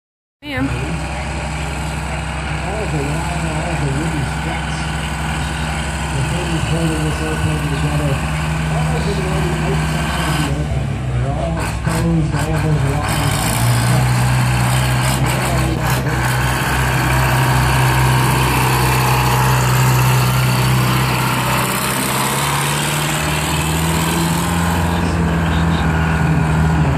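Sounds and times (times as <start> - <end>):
truck engine running at low revs: 0.4 - 26.9
voices talking: 0.4 - 26.9.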